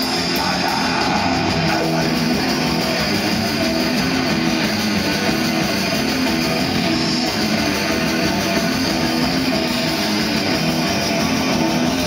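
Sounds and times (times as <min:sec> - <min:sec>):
bass guitar: 0:00.0 - 0:12.0
electric guitar riff: 0:00.0 - 0:12.0
fast drumming: 0:00.0 - 0:12.0.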